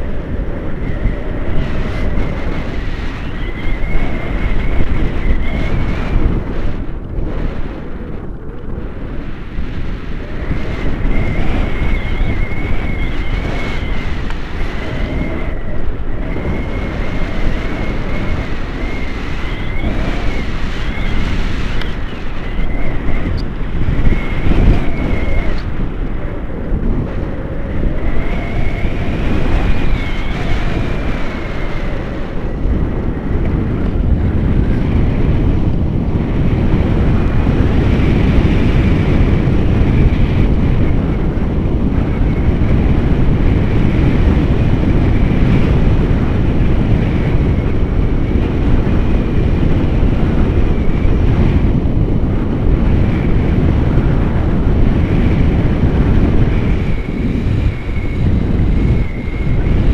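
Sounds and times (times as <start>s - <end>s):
wind buffeting microphone: 0.0s - 59.9s
faint wavering whistle: 0.4s - 6.0s, 10.2s - 23.4s, 24.0s - 32.6s.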